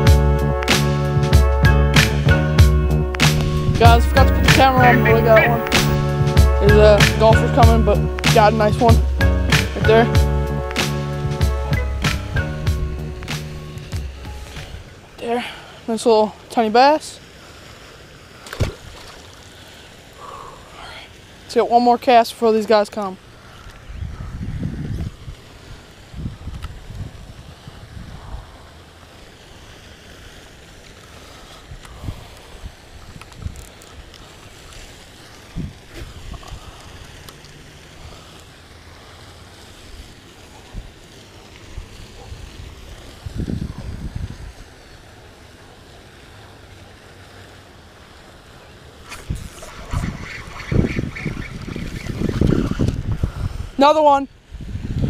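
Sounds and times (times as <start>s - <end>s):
wind buffeting microphone: 23.8s - 28.6s, 35.5s - 37.0s, 41.7s - 44.8s, 49.1s - 53.8s, 54.4s - 55.0s.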